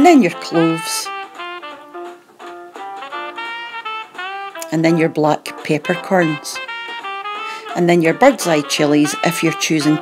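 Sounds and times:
melody of short separate notes: 0.0 - 10.0.

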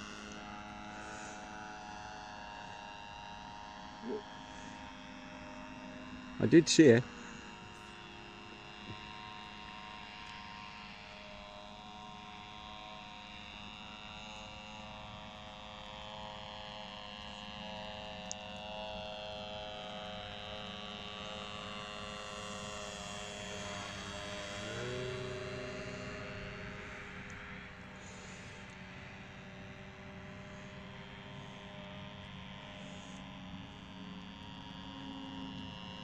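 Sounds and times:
model aircraft motor drone: 0.0 - 36.0.

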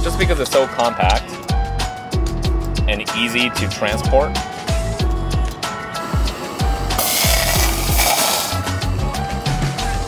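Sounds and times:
background music with beat: 0.0 - 10.0
water pouring into metal pot: 7.0 - 8.7.

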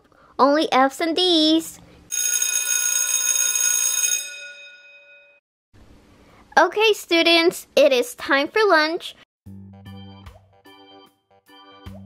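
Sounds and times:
school bell ringing: 2.1 - 5.4.

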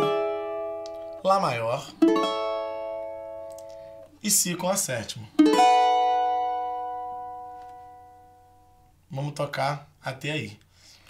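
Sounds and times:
cavaquinho chord ringing: 0.0 - 4.2, 5.4 - 9.0.

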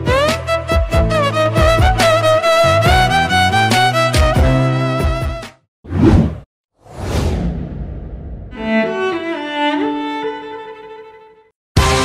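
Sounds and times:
whoosh: 5.9 - 8.6.

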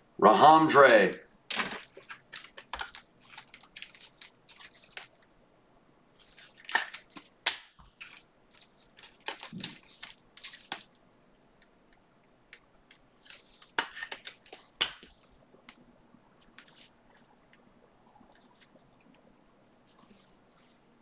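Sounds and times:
cards being handled: 1.5 - 5.2, 6.2 - 11.0, 12.5 - 15.8
plastic wrappers crinkling and tearing: 1.5 - 5.3, 6.2 - 11.0.

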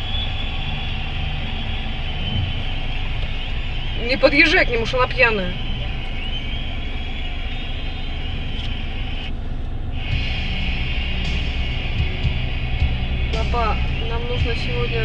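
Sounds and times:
engine and traffic rumble: 0.0 - 15.0.

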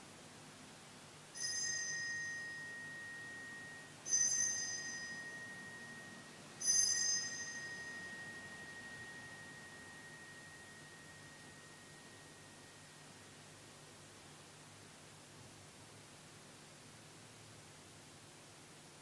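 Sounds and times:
altar bell ringing: 1.4 - 13.3.

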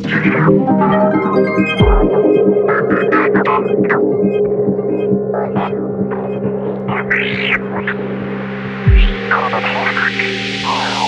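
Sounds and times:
held synth drone: 0.0 - 11.0
steady pulsing beat: 0.0 - 11.0.

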